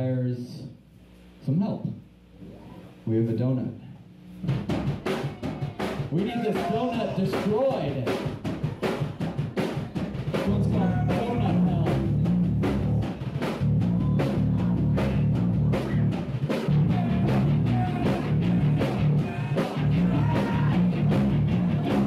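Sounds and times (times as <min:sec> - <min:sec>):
drum kit beating: 0:04.4 - 0:22.0
heavy bass and guitar riff: 0:10.5 - 0:22.0.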